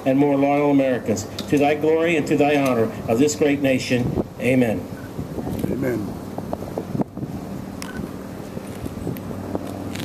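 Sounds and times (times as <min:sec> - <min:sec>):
wind on microphone: 0:03.7 - 0:10.0.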